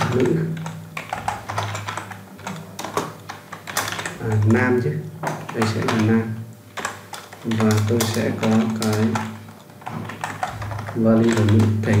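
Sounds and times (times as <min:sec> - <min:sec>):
keyboard typing: 0:00.0 - 0:12.0.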